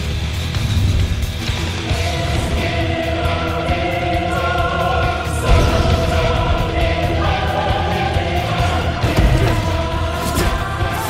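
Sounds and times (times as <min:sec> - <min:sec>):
heavy low bass and percussion: 0:00.0 - 0:10.8
orchestral film score: 0:00.0 - 0:11.0
choir singing held notes: 0:01.6 - 0:11.0
strong low hit: 0:05.4 - 0:09.8.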